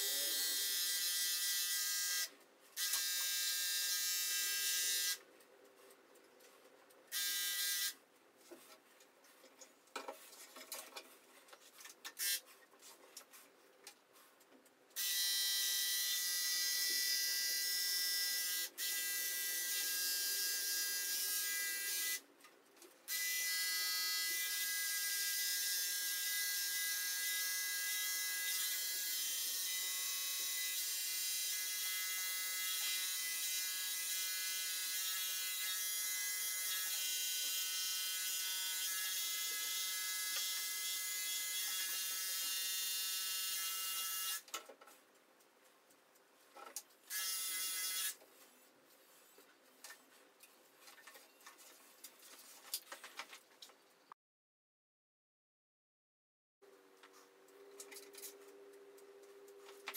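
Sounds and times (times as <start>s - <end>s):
electric clippers humming: 0.0s - 5.2s, 7.1s - 8.0s, 15.0s - 22.2s, 23.1s - 44.5s, 47.1s - 48.2s.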